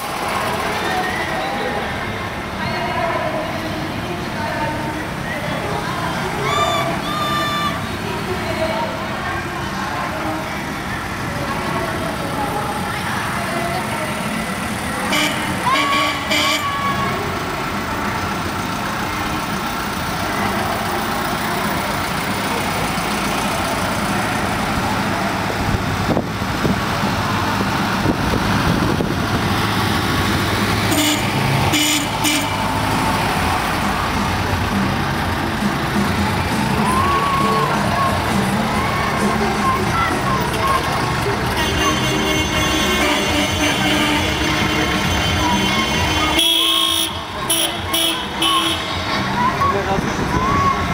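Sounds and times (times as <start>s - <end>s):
vehicle engines rumbling: 0.0s - 50.9s.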